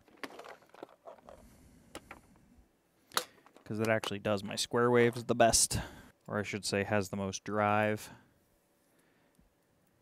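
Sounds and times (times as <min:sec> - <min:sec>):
cables clicking and rustling: 0:00.0 - 0:02.5, 0:03.1 - 0:04.4.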